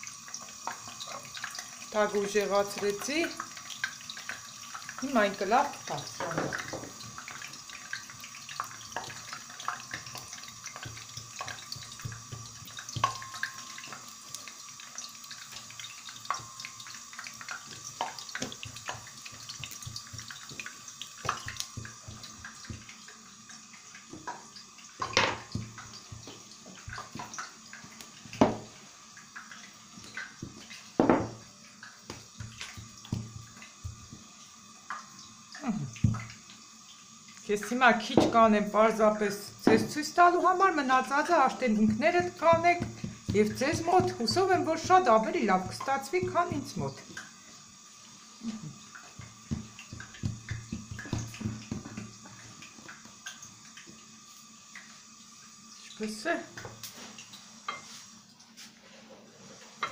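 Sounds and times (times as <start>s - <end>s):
oil popping: 0.0s - 36.6s, 41.5s - 47.6s, 48.4s - 54.0s
dough sizzling in hot oil: 0.0s - 59.9s.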